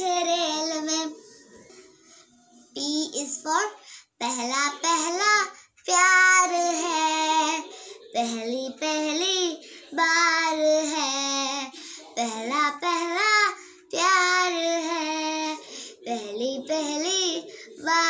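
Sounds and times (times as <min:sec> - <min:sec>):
girl singing unaccompanied: 0:00.0 - 0:01.2, 0:02.7 - 0:18.0.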